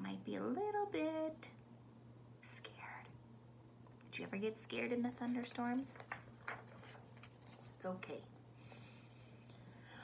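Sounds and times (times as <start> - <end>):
faint low hum: 0.0 - 10.0
woman whispering: 2.4 - 3.2.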